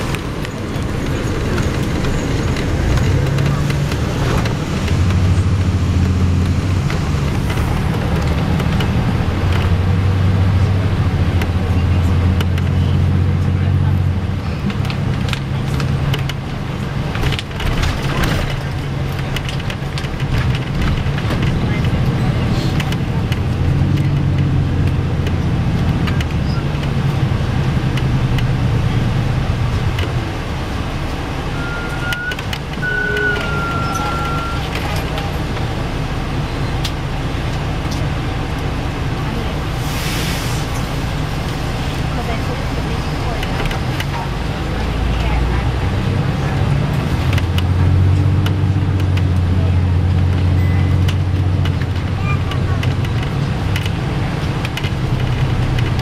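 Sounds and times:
bus engine hum: 0:00.0 - 0:56.0.

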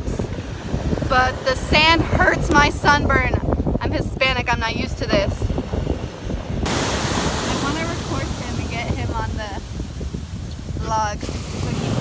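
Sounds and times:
wind buffeting microphone: 0:00.0 - 0:12.0
woman talking: 0:01.1 - 0:05.5, 0:07.4 - 0:09.7, 0:10.8 - 0:12.0.

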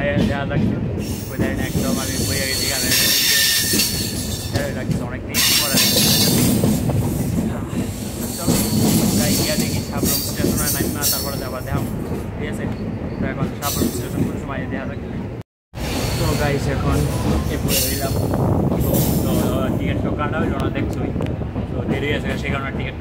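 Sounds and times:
train wheels rumbling on track: 0:00.0 - 0:23.0
high wheel squeal: 0:01.0 - 0:04.8, 0:05.4 - 0:06.6, 0:15.8 - 0:17.1.

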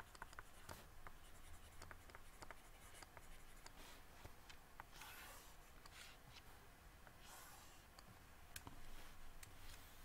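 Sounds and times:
stylus scratching on graphics tablet: 0:00.0 - 0:04.0, 0:04.9 - 0:06.2.

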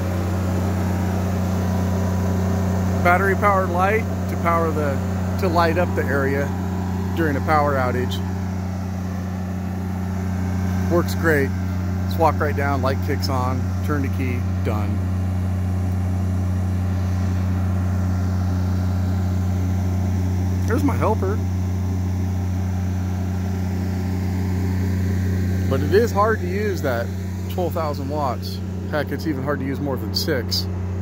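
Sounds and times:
diesel generator humming: 0:00.0 - 0:31.0.

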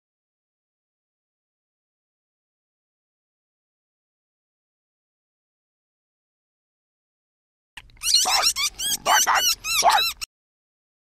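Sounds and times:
electronic robot dog barks: 0:08.0 - 0:10.3.

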